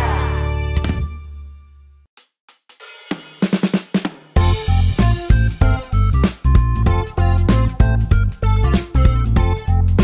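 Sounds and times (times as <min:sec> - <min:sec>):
drum kit fill with cymbals: 0:02.5 - 0:09.6.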